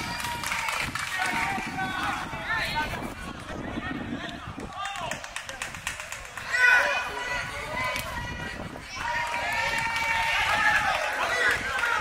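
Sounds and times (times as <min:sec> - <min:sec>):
players shouting: 0:04.2 - 0:12.0.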